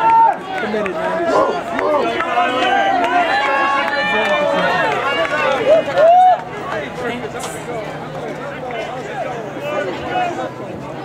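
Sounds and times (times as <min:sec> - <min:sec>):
spectators yelling and cheering: 0:00.0 - 0:11.0.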